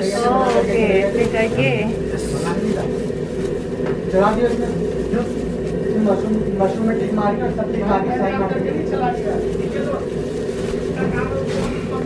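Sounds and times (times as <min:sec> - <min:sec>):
person's voice: 0:00.0 - 0:02.9
kitchen equipment drone: 0:00.0 - 0:12.0.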